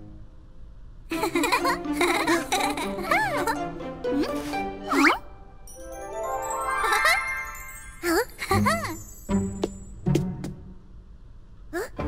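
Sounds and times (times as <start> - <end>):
sliding cartoon voice effect: 4.2 - 5.2
tinkling cartoon sparkle: 5.6 - 10.0.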